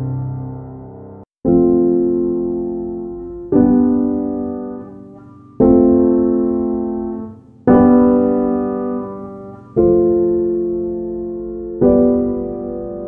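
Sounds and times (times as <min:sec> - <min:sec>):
slow piano chords: 0:00.0 - 0:13.0.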